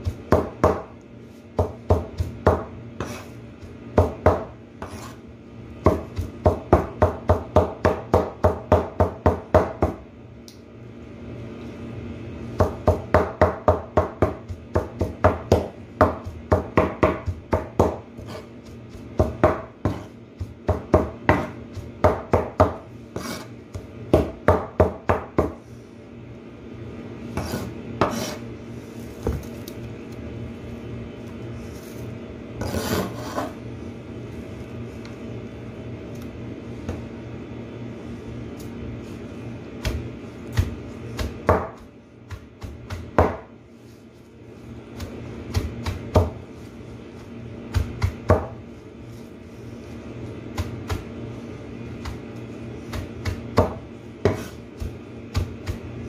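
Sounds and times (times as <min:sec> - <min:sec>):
cleaver chopping on cutting board: 0:00.1 - 0:00.9, 0:01.6 - 0:03.3, 0:04.0 - 0:05.1, 0:05.8 - 0:10.0, 0:12.6 - 0:18.5, 0:19.1 - 0:23.5, 0:24.1 - 0:25.6, 0:27.4 - 0:28.4, 0:39.8 - 0:43.5, 0:47.7 - 0:48.6, 0:52.9 - 0:55.9.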